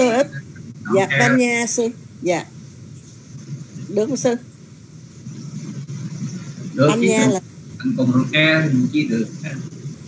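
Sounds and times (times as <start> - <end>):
person speaking: 0.0 - 2.4, 6.7 - 9.6
low uneven rumble: 0.0 - 10.0.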